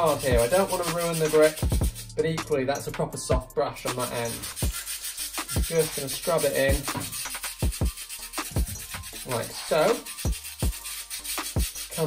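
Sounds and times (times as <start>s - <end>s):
brush scrubbing wet rubber grip: 0.0s - 2.1s, 3.9s - 12.0s.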